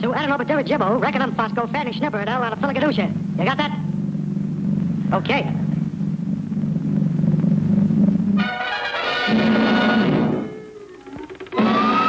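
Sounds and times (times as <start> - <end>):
low-pitched drone: 0.0 - 12.0.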